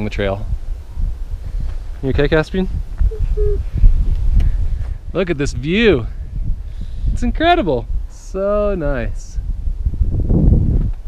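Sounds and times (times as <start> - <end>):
wind buffeting microphone: 0.0 - 11.0
child humming: 3.1 - 3.7.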